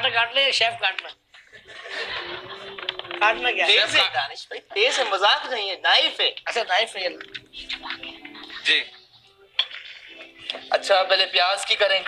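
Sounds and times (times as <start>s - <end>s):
knife and dishes clinking: 9.6s - 10.7s.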